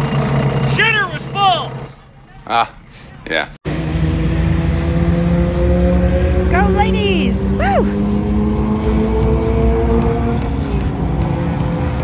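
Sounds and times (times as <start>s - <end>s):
car engines idling: 0.0s - 8.3s.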